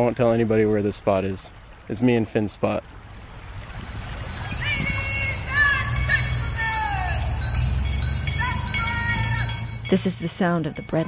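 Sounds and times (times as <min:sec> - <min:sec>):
insects chirping: 0:03.1 - 0:11.0
melodic tones sliding downward: 0:05.1 - 0:11.0.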